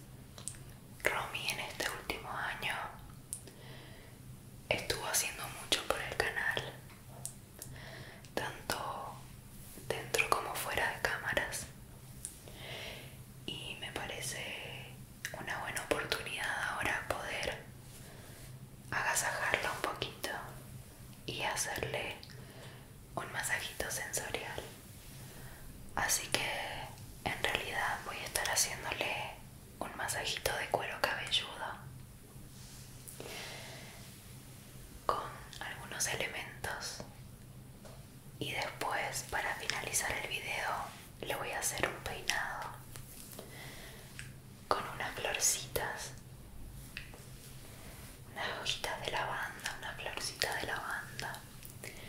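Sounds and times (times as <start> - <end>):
woman whispering: 1.0 - 3.1, 4.7 - 7.3, 8.2 - 12.4, 13.5 - 17.7, 18.9 - 20.7, 21.3 - 22.3, 23.2 - 25.1, 26.0 - 31.8, 35.0 - 37.2, 38.4 - 42.8, 44.7 - 46.2, 48.3 - 52.0.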